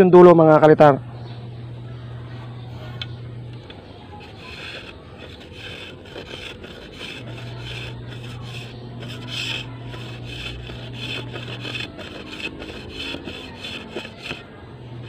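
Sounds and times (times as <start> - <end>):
knife scraping bamboo: 3.6 - 15.0.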